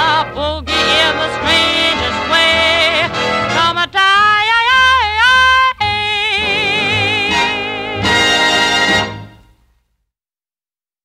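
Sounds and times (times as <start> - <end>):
woman singing with vibrato: 0.0 - 9.1
swing big band music: 0.0 - 9.7.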